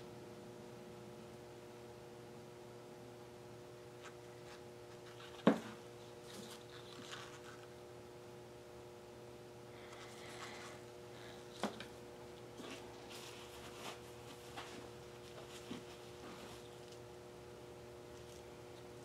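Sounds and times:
faint steady hum: 0.0s - 19.0s
soft rustle: 12.6s - 17.0s.

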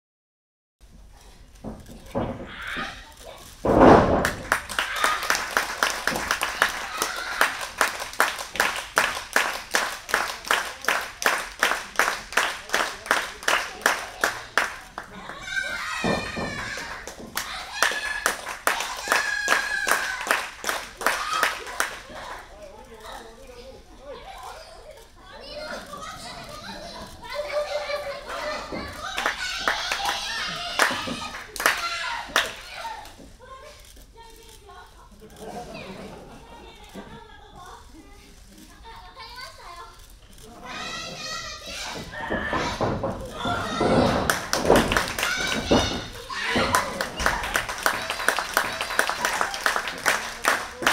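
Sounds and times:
wrestler thudding onto mat: 3.7s - 4.6s
audience clapping rhythmically: 4.2s - 22.5s, 28.9s - 33.2s, 42.5s - 50.9s.

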